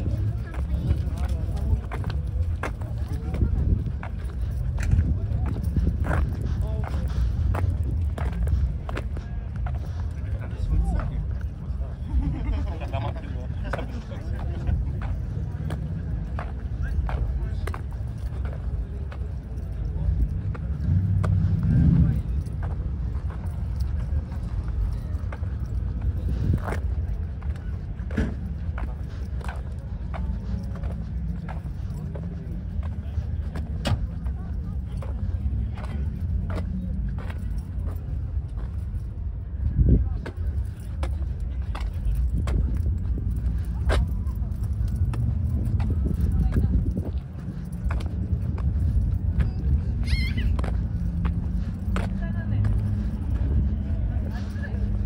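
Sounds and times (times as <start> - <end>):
background voices: 0.0 - 55.0
steady low rumble: 0.0 - 55.0.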